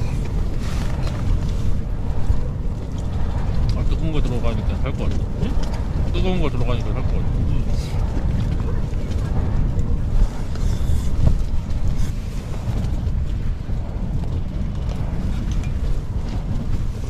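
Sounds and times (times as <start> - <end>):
gusty wind buffeting tent: 0.0 - 17.0.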